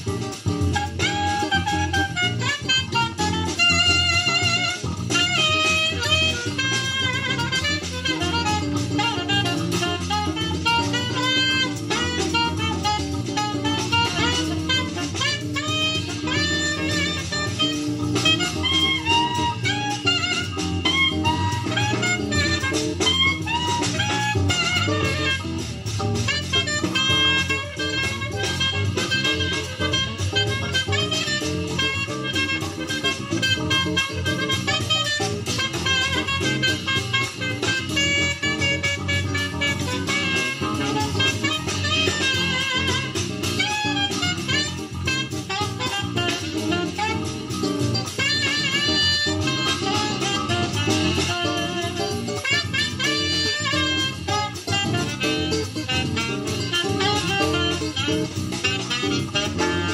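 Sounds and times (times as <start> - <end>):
drum kit: 0.0 - 59.9
electric bass: 0.0 - 59.9
saxophone melody: 0.0 - 59.9.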